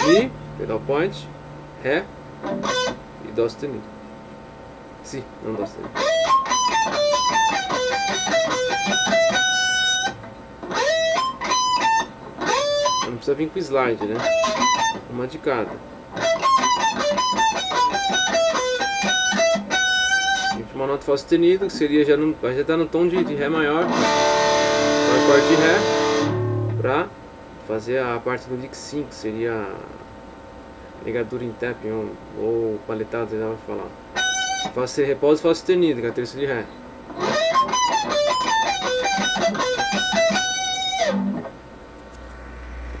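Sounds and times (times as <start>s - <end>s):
electric guitar lead run: 2.4s - 3.0s, 5.9s - 13.1s, 14.1s - 15.0s, 16.1s - 20.6s, 23.2s - 27.0s, 37.1s - 41.6s, 42.2s - 43.0s
electric guitar fast single notes: 23.2s - 27.0s
low hum: 41.8s - 43.0s.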